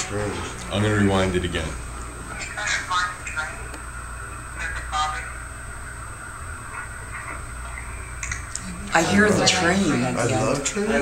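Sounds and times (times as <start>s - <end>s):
low hum: 0.0s - 10.9s.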